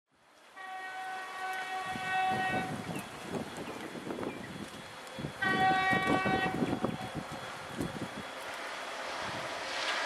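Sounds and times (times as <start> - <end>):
locomotive horn chord: 0.6 - 2.8, 5.4 - 6.7.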